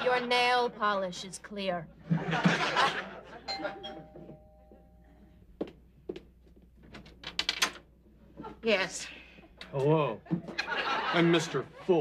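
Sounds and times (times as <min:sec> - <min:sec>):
studio audience laughter: 0:02.0 - 0:03.8, 0:10.3 - 0:12.0
two-note doorbell chime: 0:03.5 - 0:05.0.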